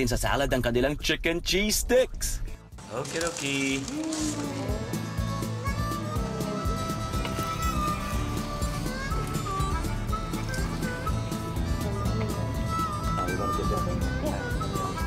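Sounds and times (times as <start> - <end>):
background music with beat: 4.6 - 15.0.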